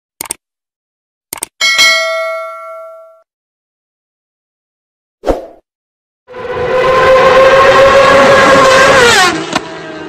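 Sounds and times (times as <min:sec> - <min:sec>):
notification bell chime: 0:01.6 - 0:03.2.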